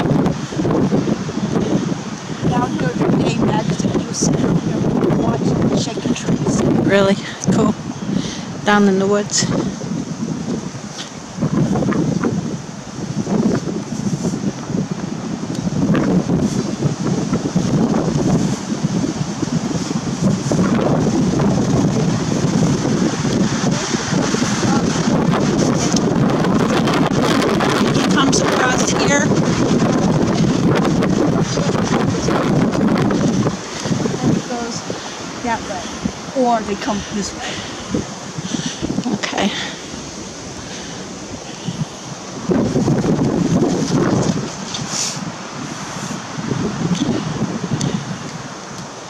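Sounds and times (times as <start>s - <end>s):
branches rustling: 0.0s - 49.0s
wind buffeting microphone: 0.0s - 49.0s.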